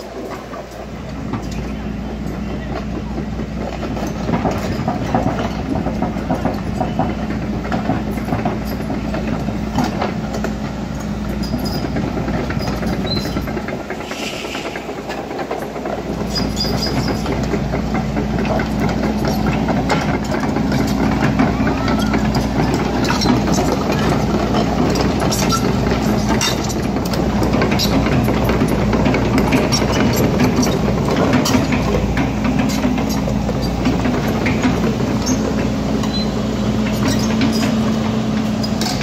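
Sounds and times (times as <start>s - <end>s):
heavy machinery drone: 0.0s - 39.0s.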